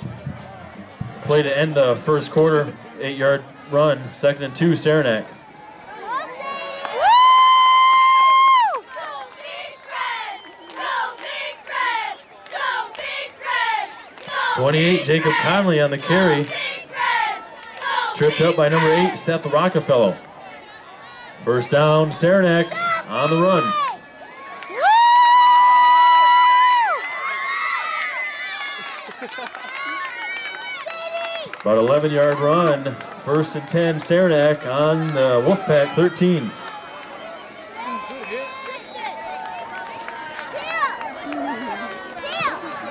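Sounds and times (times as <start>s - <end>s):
cheerleaders chanting in unison: 8.8s - 20.2s.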